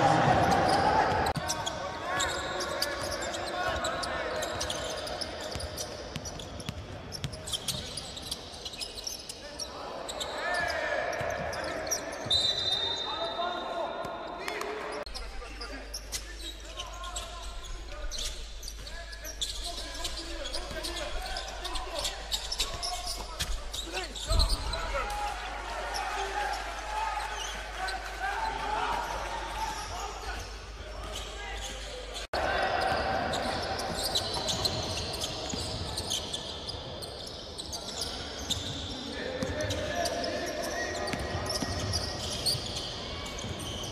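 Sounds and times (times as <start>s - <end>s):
echoing voices: 0.0s - 5.4s.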